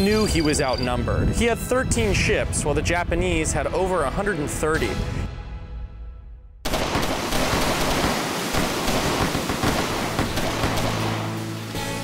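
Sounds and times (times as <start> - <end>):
fireworks crackling and popping: 6.7 - 11.7.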